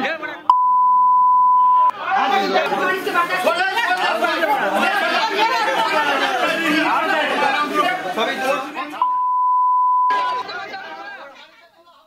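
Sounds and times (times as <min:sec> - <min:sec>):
high censor beep: 0:00.5 - 0:01.9, 0:09.0 - 0:10.3
crowd talking: 0:01.4 - 0:12.0.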